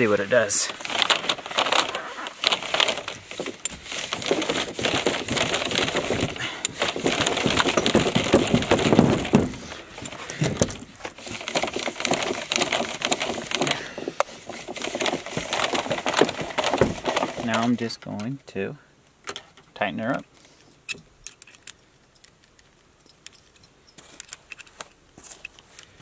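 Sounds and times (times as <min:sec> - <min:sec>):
plastic pipe crackling and creaking: 0:00.0 - 0:18.2.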